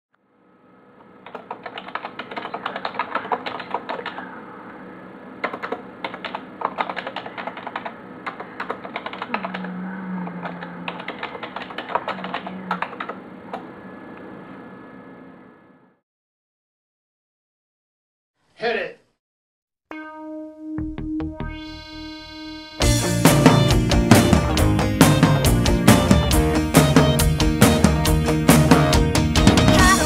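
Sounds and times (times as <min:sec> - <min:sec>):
low steady hum: 0:00.2 - 0:16.0.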